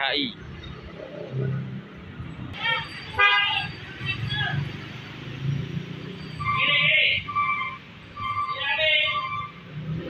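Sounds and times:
street traffic rumbling: 0.0s - 10.0s.

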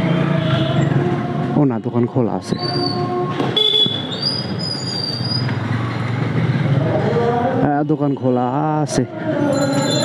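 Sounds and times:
road noise: 0.0s - 10.0s.

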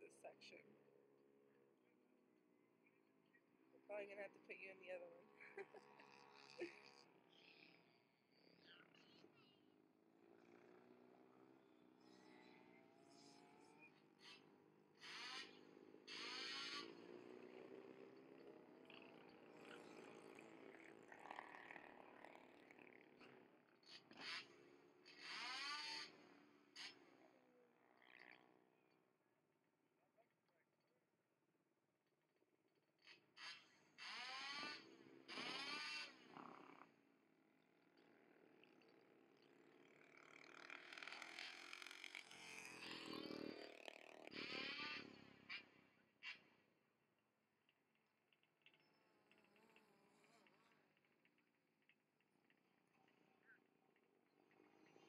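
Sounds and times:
race bike engine revving: 5.4s - 7.6s, 10.0s - 28.8s, 33.1s - 37.1s, 39.7s - 46.5s.

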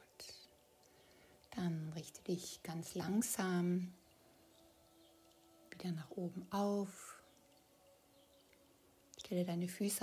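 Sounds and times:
woman speaking: 1.5s - 4.0s, 5.7s - 7.2s, 9.2s - 10.0s.

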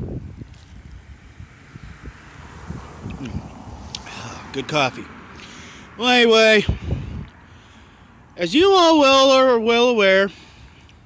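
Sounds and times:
man sipping and swallowing: 3.0s - 4.1s.

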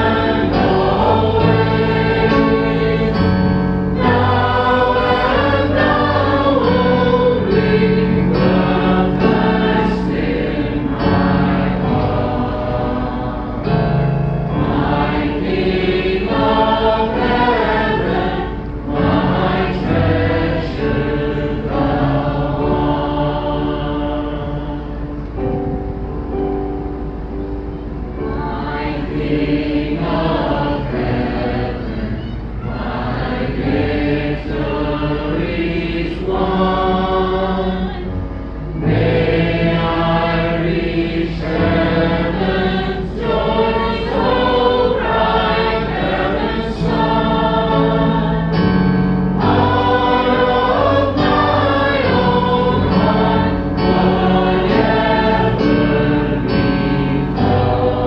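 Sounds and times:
group singing worship song: 0.0s - 25.4s, 28.2s - 58.0s
electric keyboard: 0.0s - 58.0s.

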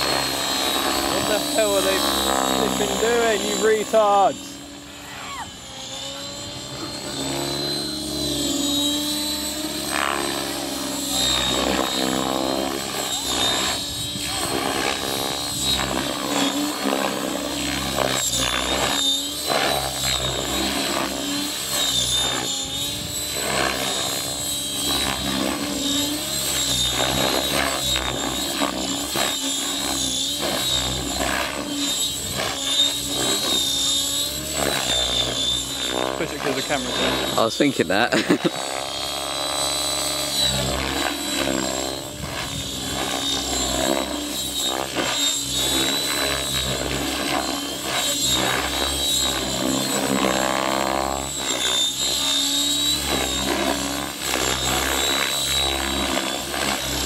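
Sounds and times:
rc helicopter rotor whine: 0.0s - 57.0s.

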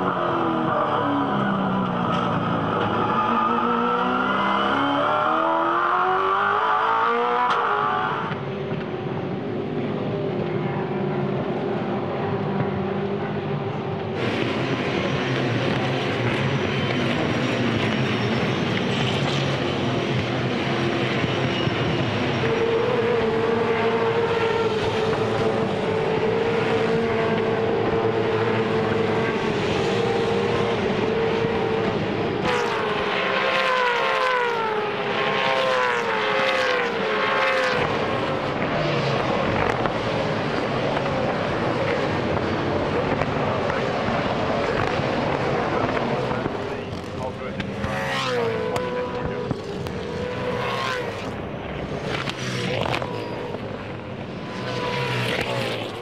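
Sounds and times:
cars passing by: 0.0s - 56.0s
racing car engines: 0.0s - 56.0s.

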